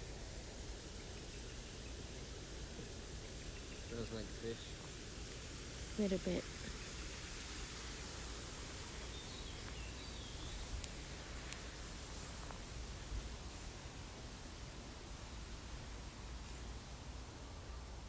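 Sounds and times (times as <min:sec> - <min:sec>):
faint background hiss: 0:00.0 - 0:18.0
faint bird chirps: 0:03.2 - 0:04.8.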